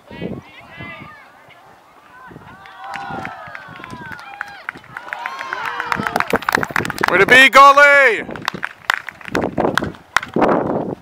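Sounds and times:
players and spectators shouting: 0:00.0 - 0:06.3.

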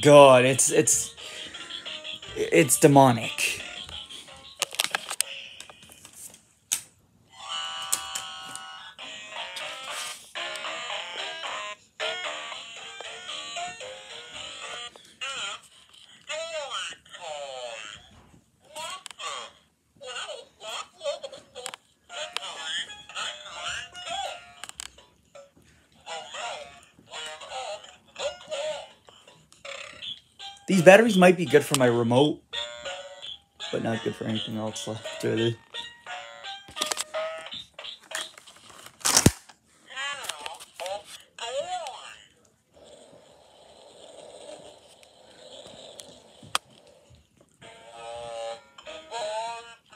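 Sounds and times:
toy recorded voice: 0:07.3 - 0:24.6, 0:26.0 - 0:30.2, 0:31.6 - 0:35.6, 0:39.9 - 0:43.3.

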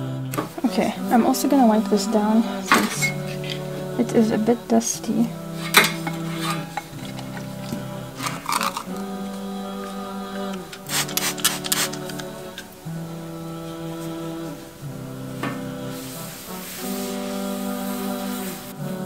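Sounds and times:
wordless vocal chords: 0:00.0 - 0:19.0
cloth rubbing on metal tabletop: 0:05.6 - 0:08.8.

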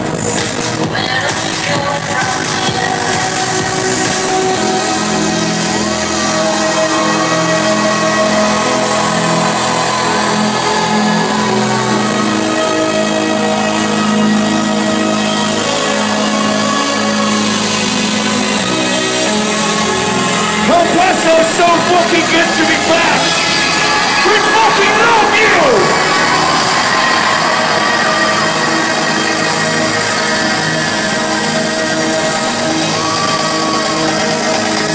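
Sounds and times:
electronic dance music: 0:00.0 - 0:34.9.

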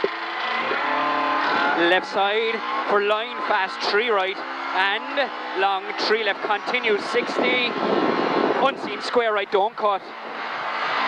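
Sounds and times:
rally car engine from inside cabin: 0:00.0 - 0:08.9
co-driver's voice: 0:01.7 - 0:07.8, 0:08.6 - 0:10.1.

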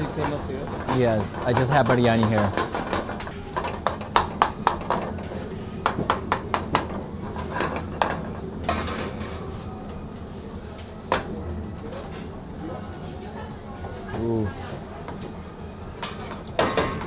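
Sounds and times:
low kitchen hum: 0:00.0 - 0:17.0.

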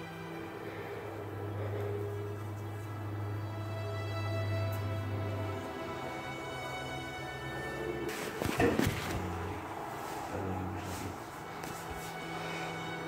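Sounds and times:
music of long held notes: 0:00.0 - 0:13.0.

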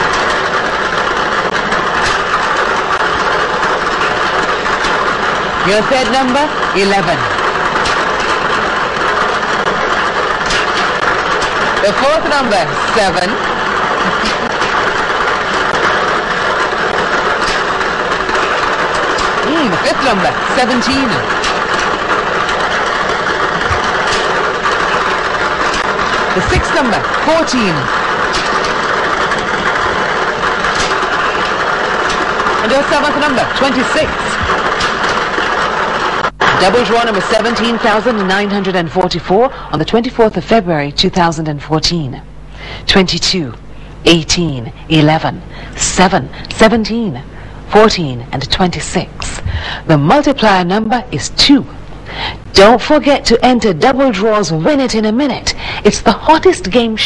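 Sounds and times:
blower rushing: 0:00.0 - 0:40.0
plastic balls tumbling and clicking: 0:00.0 - 0:41.0.

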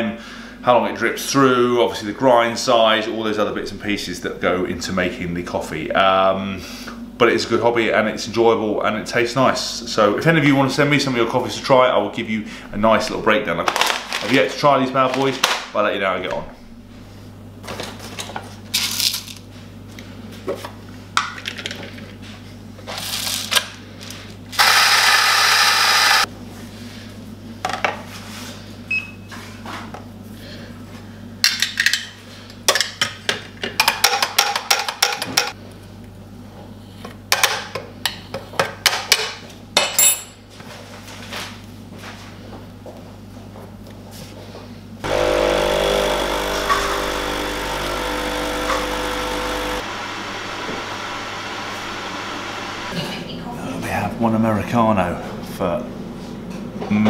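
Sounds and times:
coffee grinder grinding beans: 0:24.6 - 0:26.3, 0:45.0 - 0:53.0
espresso machine pump humming: 0:24.6 - 0:26.3, 0:45.0 - 0:53.0.

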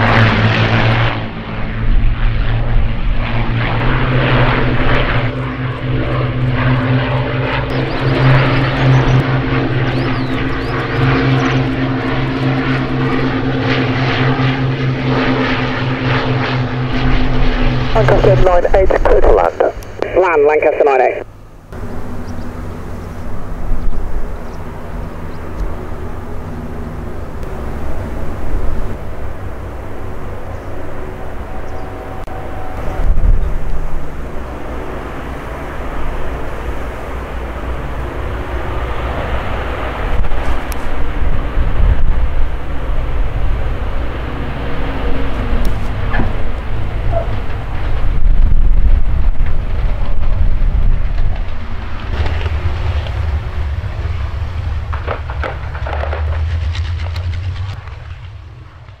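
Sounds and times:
propeller plane engines running: 0:00.0 - 0:59.0.

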